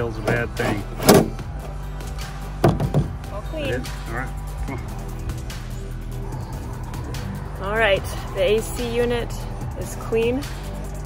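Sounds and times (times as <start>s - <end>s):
background music: 0.0s - 11.0s.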